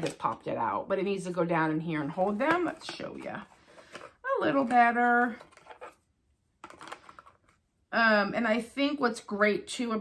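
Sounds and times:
plastic container clicking and rustling: 6.6s - 7.4s.

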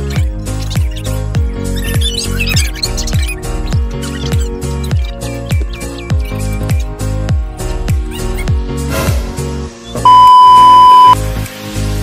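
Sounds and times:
background music with bass line: 0.0s - 12.0s
high electronic test-tone beep: 10.0s - 11.2s.

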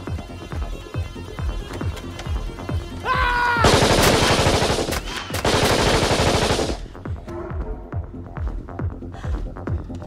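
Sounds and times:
assault rifle automatic fire: 3.7s - 6.9s.

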